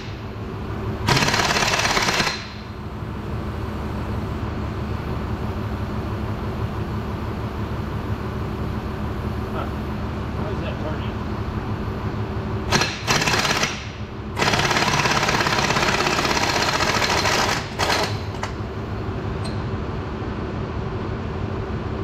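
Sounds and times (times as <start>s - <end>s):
steady shop hum: 0.0s - 22.0s
impact wrench hammering: 1.0s - 2.7s, 12.7s - 18.6s.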